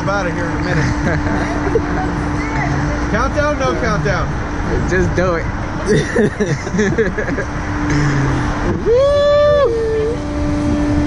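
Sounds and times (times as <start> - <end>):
steady low hum: 0.0 - 11.0
person crying out: 8.8 - 10.2.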